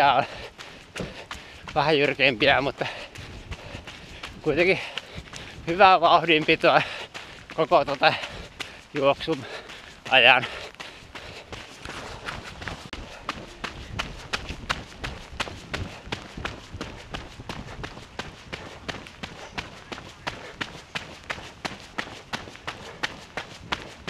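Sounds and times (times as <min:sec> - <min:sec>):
running footsteps on wet gravel: 0:00.0 - 0:24.0.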